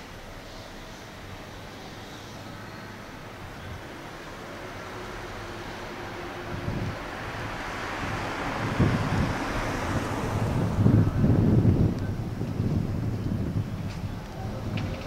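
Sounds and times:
approaching train rumble: 0.0s - 15.0s
wind buffeting microphone: 3.2s - 15.0s.

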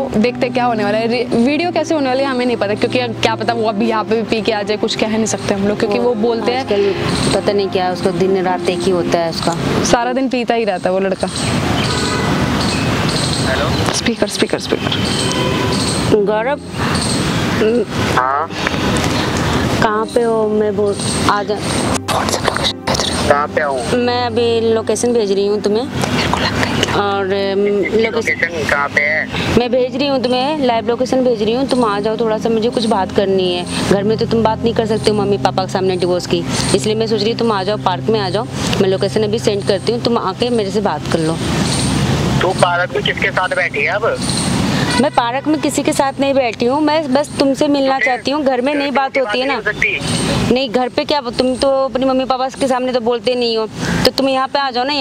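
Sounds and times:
person speaking: 0.1s - 9.8s, 17.6s - 41.1s, 47.6s - 50.5s
motor vehicle passing: 0.1s - 52.1s
traffic noise hiss: 11.2s - 23.9s, 25.9s - 32.1s, 38.5s - 55.0s.

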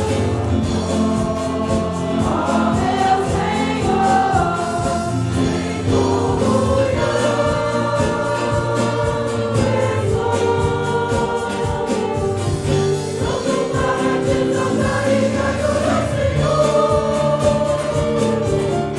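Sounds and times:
group singing a hymn: 0.0s - 18.9s
instrumental accompaniment with beat: 0.0s - 18.9s.

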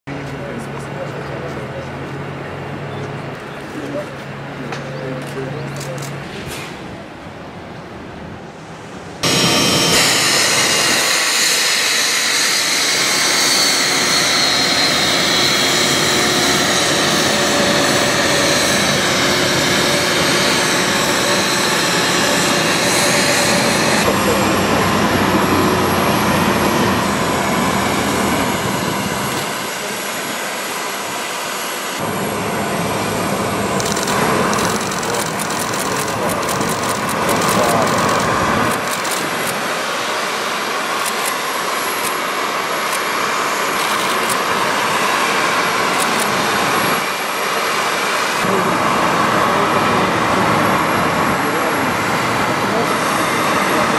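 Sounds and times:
jet engines whining: 4.3s - 53.9s.

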